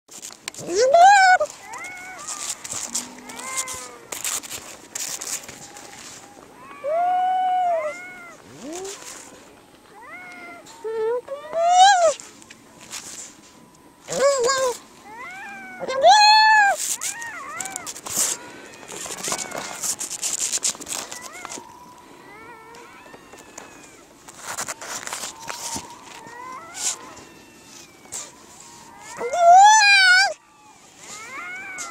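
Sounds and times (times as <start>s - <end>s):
seal pup crying: 0.6s - 12.3s, 14.0s - 31.9s.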